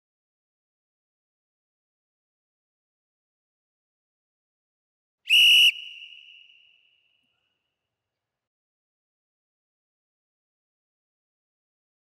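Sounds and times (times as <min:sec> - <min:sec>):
loud whistle blast: 0:05.3 - 0:07.1.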